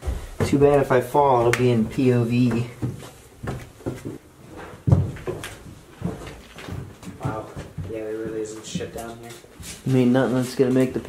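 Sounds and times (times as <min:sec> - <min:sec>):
footsteps on wooden stairs: 0:00.0 - 0:11.0.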